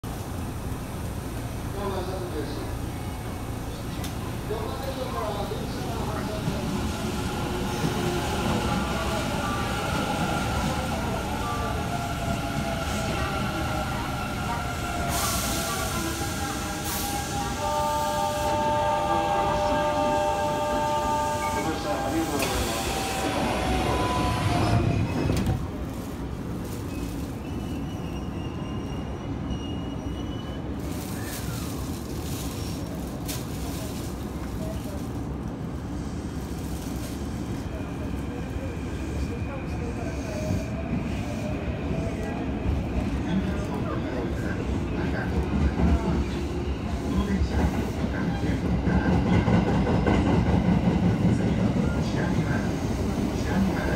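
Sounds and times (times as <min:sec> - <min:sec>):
rumble of train cars: 0:00.0 - 0:53.9.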